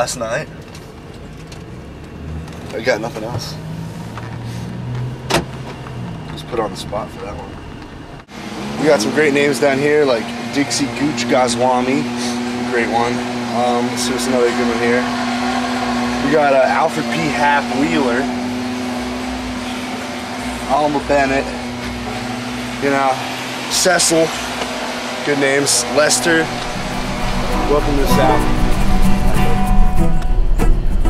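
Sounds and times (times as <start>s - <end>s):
engine and road hum: 0.0s - 31.0s.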